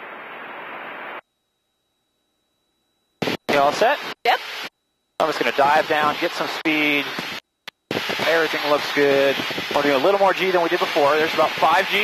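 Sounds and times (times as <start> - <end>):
steady rushing cockpit noise: 3.1 - 12.0.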